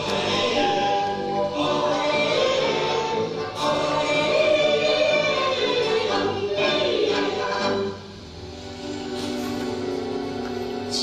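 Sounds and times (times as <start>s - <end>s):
choir singing: 0.0s - 8.3s.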